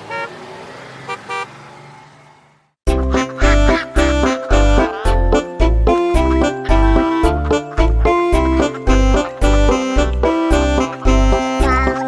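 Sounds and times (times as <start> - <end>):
cartoon bus horn toots: 0.1 - 0.4, 3.1 - 11.8
bouncy children's song with beat: 2.9 - 12.0
children's song: 3.7 - 12.0.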